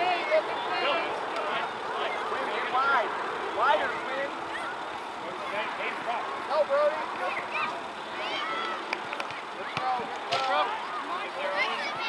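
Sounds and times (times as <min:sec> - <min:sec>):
players and spectators shouting: 0:00.0 - 0:12.0
steady background hum: 0:00.0 - 0:12.0.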